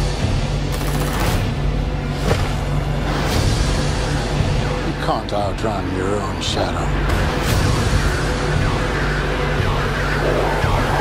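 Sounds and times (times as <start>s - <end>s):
low drone: 6.2s - 11.0s.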